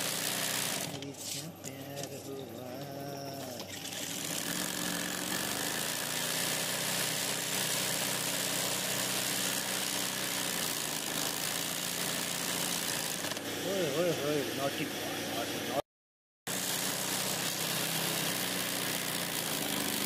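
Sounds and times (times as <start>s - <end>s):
sewing machine stitching: 0.0s - 1.4s, 2.8s - 14.1s, 16.5s - 20.0s.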